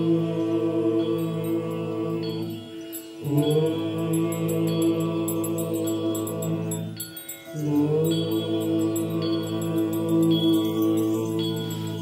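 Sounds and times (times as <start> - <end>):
mantra chanting in held notes: 0.0 - 7.0, 7.6 - 12.0
high percussion ticks: 0.0 - 12.0.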